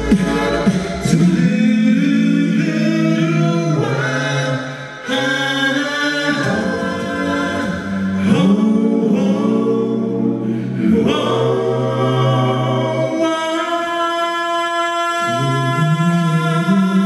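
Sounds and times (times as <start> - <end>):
male a cappella harmony singing: 0.0 - 17.0.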